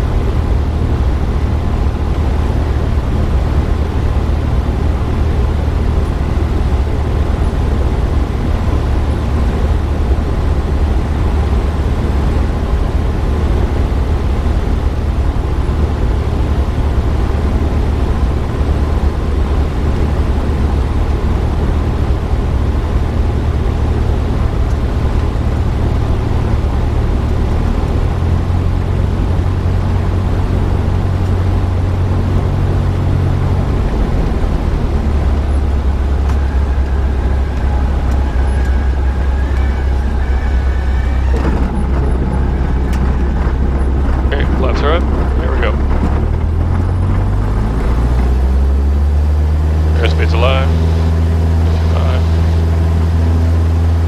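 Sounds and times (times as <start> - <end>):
light aircraft engine drone: 0.0 - 54.0.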